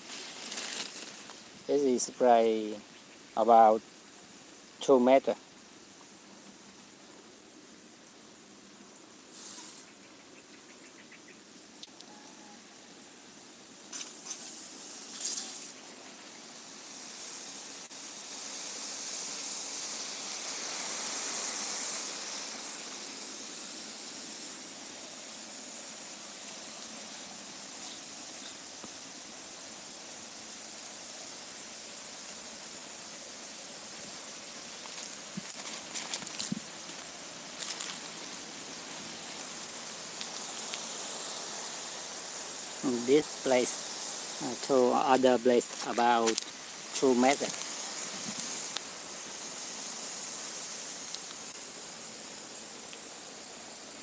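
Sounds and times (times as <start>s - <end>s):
water spraying from a pipe: 9.2s - 9.9s, 13.8s - 54.0s.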